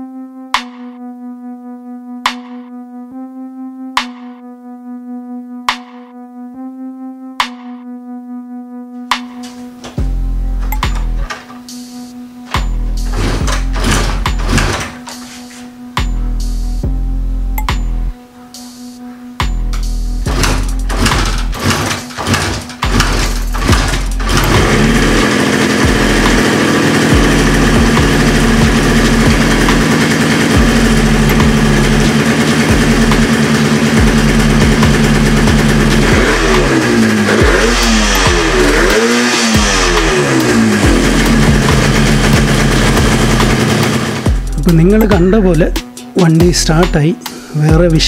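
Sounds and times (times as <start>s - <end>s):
motorcycle being kick-started: 9.3s - 11.8s, 12.5s - 15.7s, 19.7s - 44.4s
two-stroke engine running and revving: 12.5s - 16.2s, 19.7s - 46.9s.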